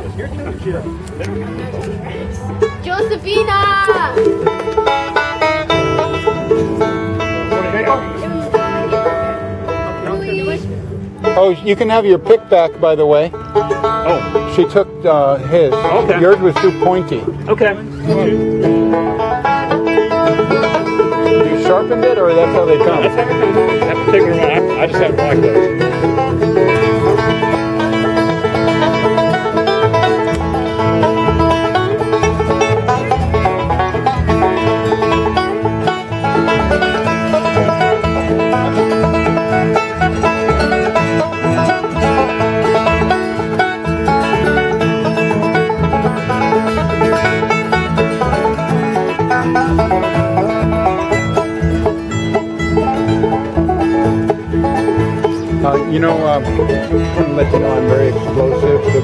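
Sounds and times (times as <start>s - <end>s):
bluegrass acoustic band playing: 0.0s - 59.0s.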